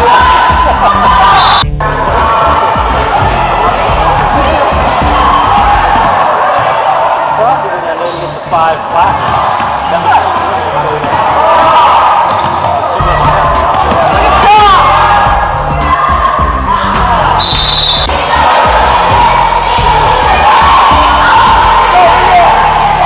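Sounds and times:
crowd voices: 0:00.0 - 0:23.0
sneakers squeaking: 0:02.2 - 0:11.4, 0:12.2 - 0:15.7.

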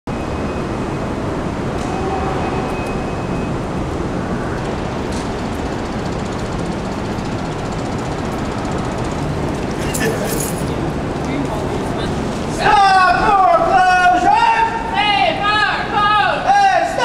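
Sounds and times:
faint high whine: 0:00.1 - 0:03.8
city traffic rumble: 0:00.1 - 0:17.0.

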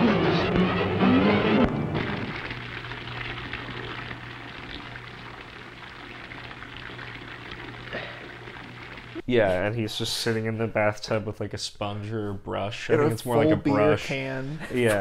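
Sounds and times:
low steady hum: 0:00.1 - 0:11.4
tap running water into tub: 0:01.6 - 0:09.2.

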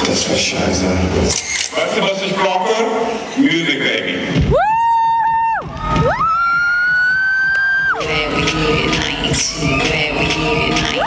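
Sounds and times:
crowd cheering: 0:04.4 - 0:08.0
high-pitched whoops: 0:04.5 - 0:08.0.

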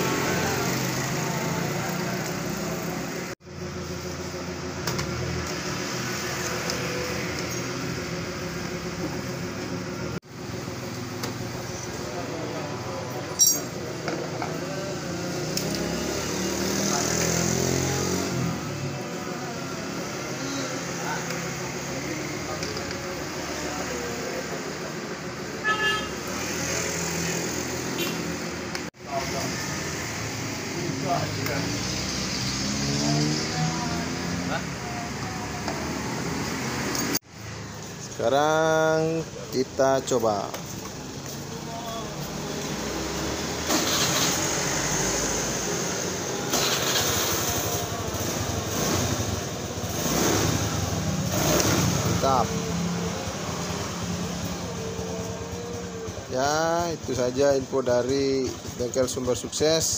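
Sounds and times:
passing street traffic: 0:00.0 - 0:59.9.

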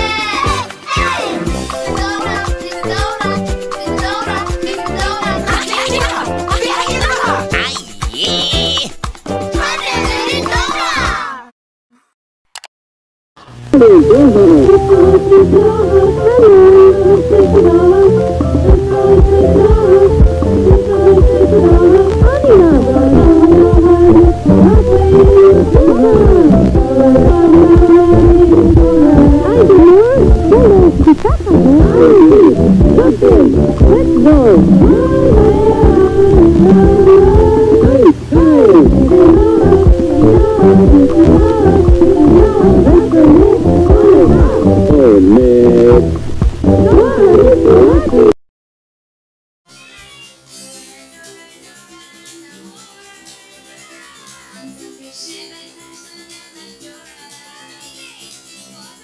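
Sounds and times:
cartoon theme song singing: 0:00.0 - 0:11.5, 0:13.8 - 0:48.4
steady beat: 0:01.0 - 0:10.9, 0:18.5 - 0:48.3.

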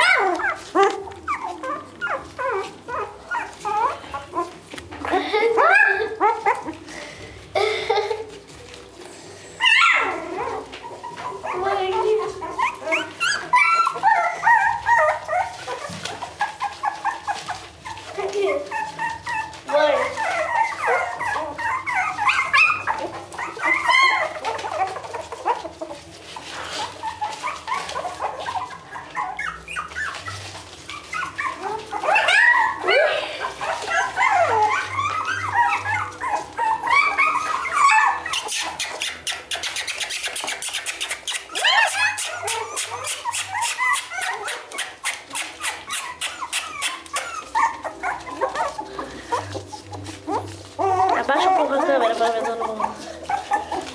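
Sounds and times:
puppies whining and yelping: 0:00.0 - 0:53.9.

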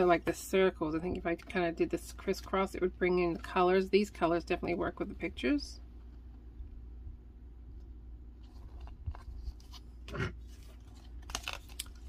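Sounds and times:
low steady hum: 0:00.0 - 0:12.0
paper rustling and crinkling: 0:08.4 - 0:12.0.

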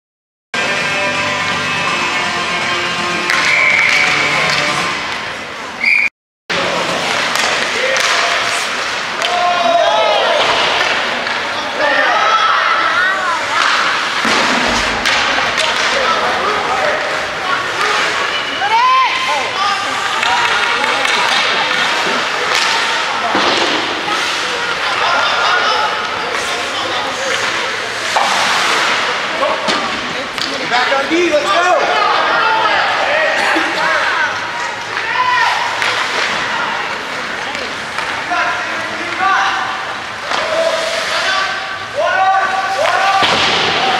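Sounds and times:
indoor rink noise: 0:00.6 - 0:43.9
hockey sticks and puck knocks: 0:06.8 - 0:09.4, 0:13.6 - 0:16.2, 0:20.1 - 0:24.4, 0:42.7 - 0:43.9.

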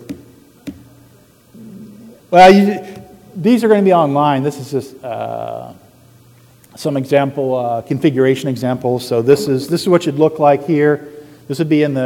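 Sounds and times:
faint voice hum: 0:00.8 - 0:02.3.

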